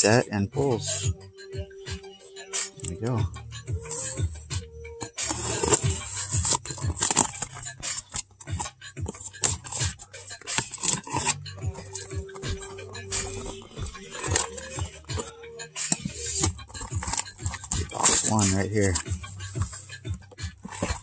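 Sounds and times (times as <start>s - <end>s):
faint music: 0.0s - 21.0s
knife slitting packing tape: 5.2s - 8.2s
cardboard flaps scraping: 20.5s - 21.0s.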